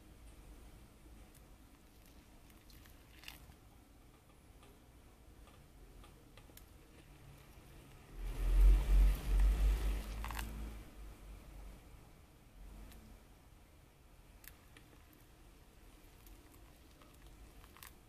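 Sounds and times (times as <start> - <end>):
hot water pouring onto coffee: 1.8 - 3.6, 8.3 - 10.7, 15.9 - 18.0.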